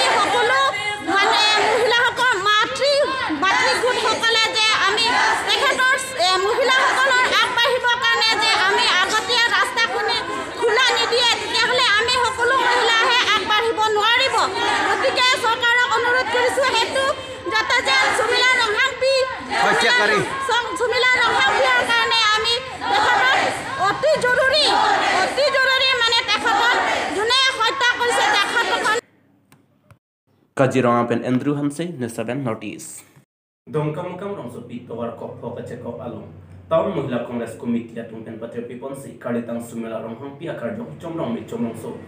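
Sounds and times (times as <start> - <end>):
woman talking: 0.0 - 29.0
women shouting slogans: 0.0 - 29.0.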